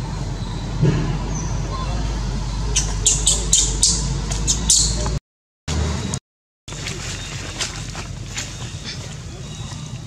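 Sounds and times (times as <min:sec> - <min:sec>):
macaque squeaking: 0:02.7 - 0:05.0.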